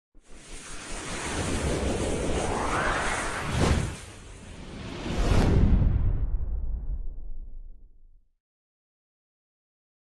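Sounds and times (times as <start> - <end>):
whoosh: 0.2 - 8.1
low rumble: 1.5 - 8.2.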